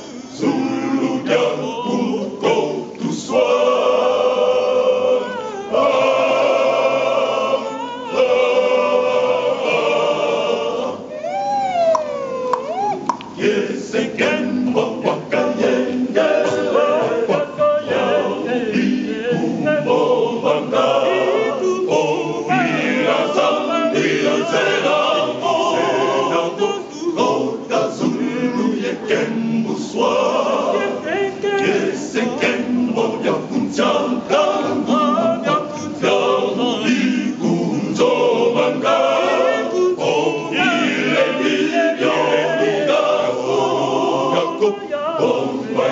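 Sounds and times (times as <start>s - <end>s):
choir singing unaccompanied: 0.0s - 11.3s, 12.6s - 45.9s.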